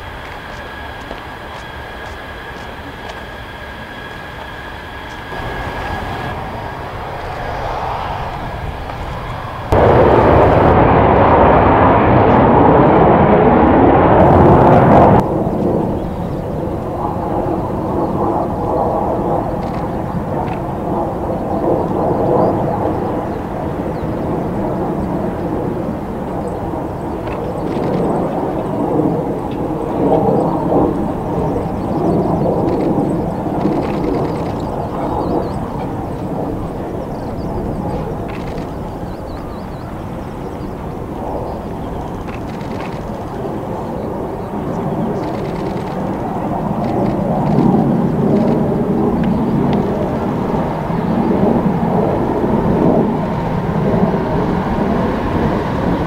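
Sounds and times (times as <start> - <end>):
jet engines running: 0.0 - 56.0.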